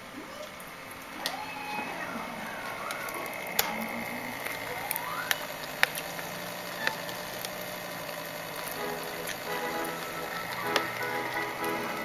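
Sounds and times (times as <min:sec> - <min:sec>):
extruder motor hum: 0:00.0 - 0:12.0
sharp clicks: 0:02.6 - 0:11.9.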